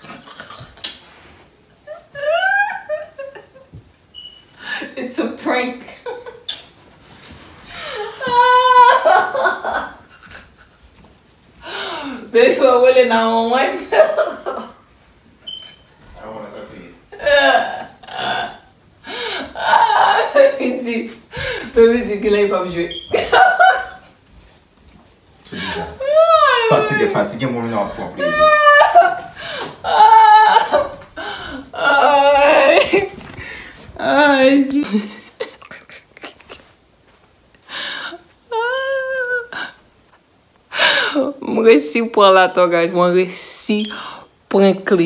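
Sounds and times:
woman laughing hard: 1.9s - 3.8s, 7.8s - 10.7s, 23.1s - 24.1s, 28.2s - 33.3s, 34.7s - 36.7s
woman speaking: 4.8s - 6.1s, 12.2s - 14.2s, 19.6s - 23.1s, 34.0s - 35.2s, 41.1s - 45.0s
woman gasping: 11.6s - 12.3s, 19.1s - 19.6s, 25.5s - 26.0s, 29.4s - 29.8s, 31.2s - 31.8s, 40.7s - 41.3s.

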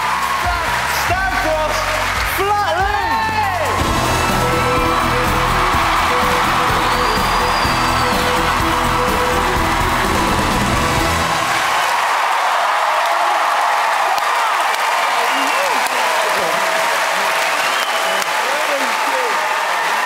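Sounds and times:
bass-heavy music: 0.0s - 11.8s
audience cheering and whooping: 0.0s - 20.0s.

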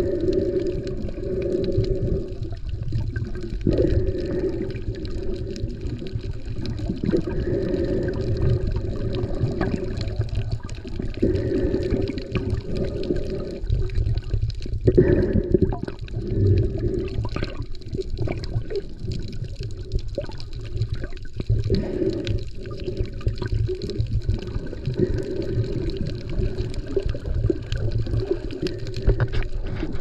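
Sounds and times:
underwater sloshing and bubbling: 0.0s - 30.0s.

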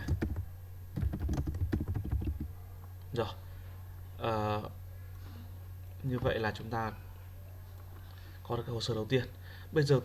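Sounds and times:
computer keyboard typing: 0.0s - 2.5s.

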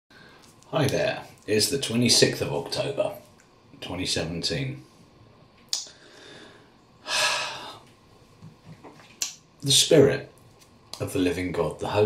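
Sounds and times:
faint breath: 5.9s - 7.9s.

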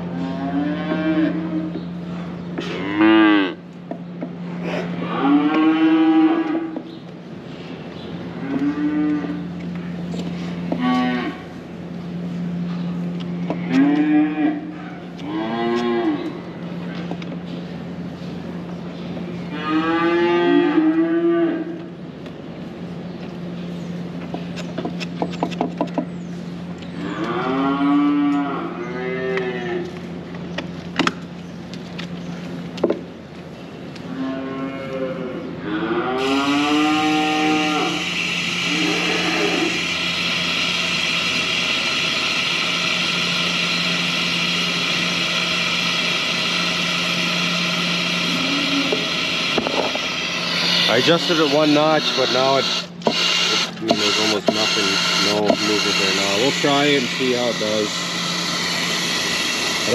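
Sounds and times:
cows mooing: 0.0s - 1.8s, 2.6s - 3.6s, 4.8s - 6.8s, 8.4s - 9.5s, 10.7s - 11.5s, 13.5s - 16.4s, 19.4s - 21.8s, 27.0s - 30.0s, 34.1s - 41.0s, 42.6s - 52.6s
steady low hum: 0.0s - 59.9s.

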